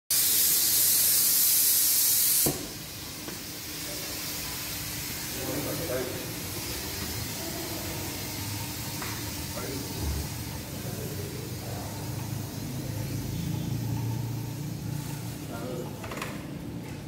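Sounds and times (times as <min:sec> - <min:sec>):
smoke sticks hissing: 0:00.1 - 0:07.4.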